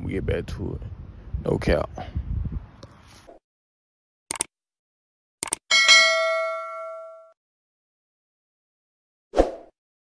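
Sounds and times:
bright bell ding: 0:05.7 - 0:07.4.

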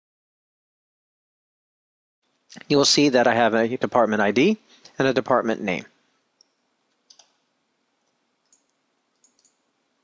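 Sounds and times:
computer mouse clicks: 0:06.4 - 0:07.4, 0:08.0 - 0:09.7.

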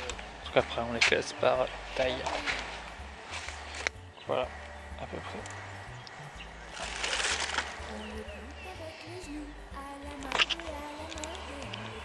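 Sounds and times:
faint voices: 0:00.0 - 0:05.5, 0:06.7 - 0:12.0
leaves rustling: 0:00.0 - 0:12.0.

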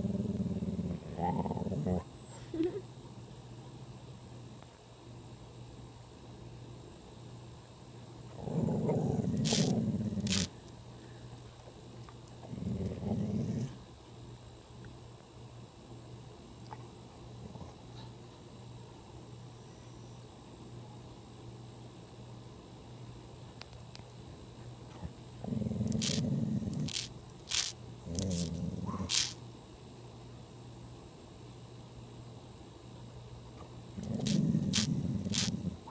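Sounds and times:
dog growling low: 0:00.0 - 0:02.1, 0:08.3 - 0:10.5, 0:12.4 - 0:13.8, 0:25.4 - 0:29.4, 0:34.0 - 0:35.9
sharp hissing bursts: 0:09.4 - 0:10.5, 0:26.0 - 0:26.2, 0:26.8 - 0:28.5, 0:29.1 - 0:29.4, 0:34.2 - 0:35.6.

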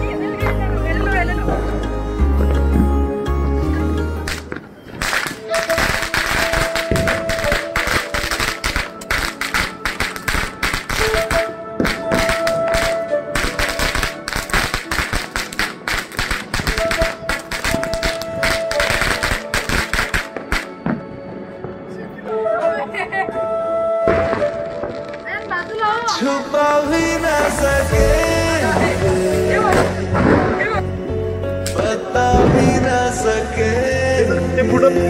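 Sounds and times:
background music: 0:00.0 - 0:35.0
firecrackers crackling and popping: 0:04.2 - 0:22.0, 0:24.0 - 0:26.2, 0:28.6 - 0:30.8.

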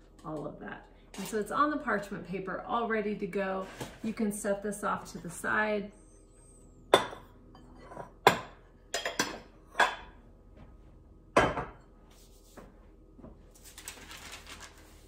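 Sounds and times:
glass bowls knocking and clinking: 0:06.9 - 0:10.1, 0:11.4 - 0:11.9
parchment paper rustling: 0:13.5 - 0:15.0.

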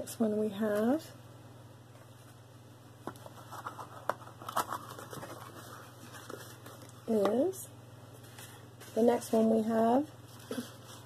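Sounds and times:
jewelry box rustling: 0:03.2 - 0:06.9.

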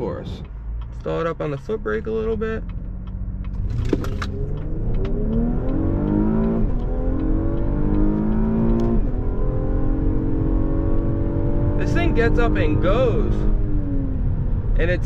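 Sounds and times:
car engine accelerating: 0:00.0 - 0:15.0
pop on gear shifts: 0:00.2 - 0:09.2.

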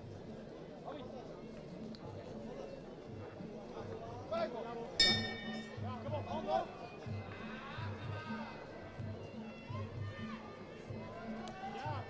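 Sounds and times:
crowd voices: 0:00.0 - 0:12.0
boxing ring bell ringing: 0:05.0 - 0:05.8.

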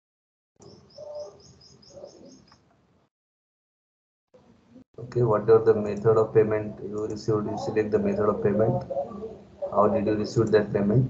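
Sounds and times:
bird chirping: 0:00.6 - 0:02.6.

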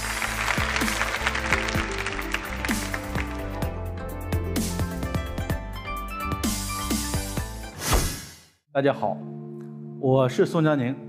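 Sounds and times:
studio audience applauding: 0:00.0 - 0:03.8
entrance music with deep bass: 0:00.0 - 0:07.6.

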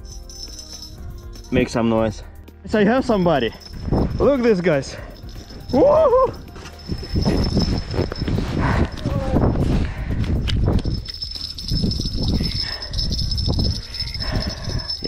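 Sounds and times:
fishing rod and reel rustling: 0:03.6 - 0:09.2, 0:10.4 - 0:15.0.

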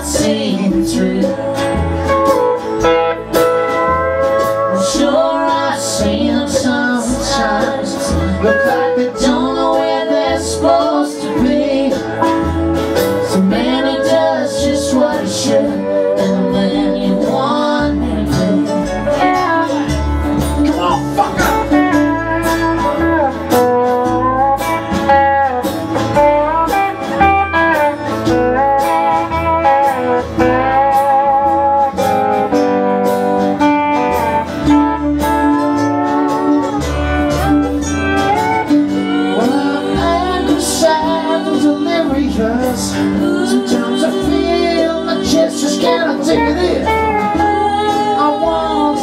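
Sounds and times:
acoustic guitars: 0:00.0 - 0:49.0
upright bass line: 0:00.0 - 0:49.0.

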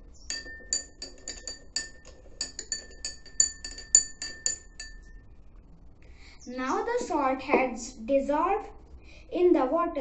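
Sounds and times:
spoon clinking in glass: 0:00.3 - 0:05.2.

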